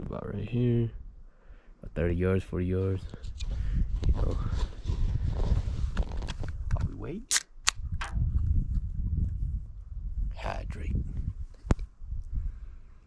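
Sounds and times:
wind buffeting microphone: 2.9 - 13.0
sharp clicks: 6.7 - 8.2.

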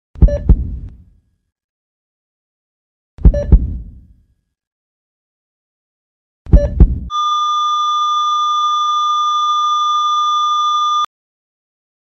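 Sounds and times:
patient monitor flatline beep: 6.6 - 11.1.

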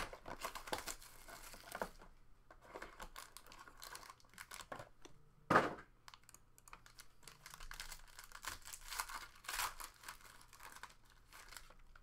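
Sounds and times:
foil wrapper crinkling and tearing: 0.0 - 2.0, 2.8 - 4.7, 6.1 - 12.0.

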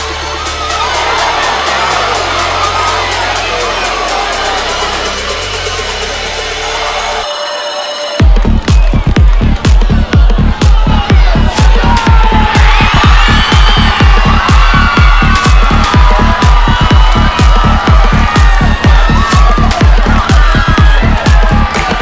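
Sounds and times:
crowd cheering and shouting: 0.0 - 22.0
electronic dance music: 0.0 - 22.0.

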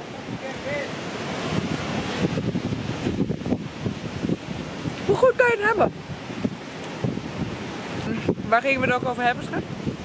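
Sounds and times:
steady rushing noise: 0.0 - 10.0
wind buffeting microphone: 0.0 - 10.0.

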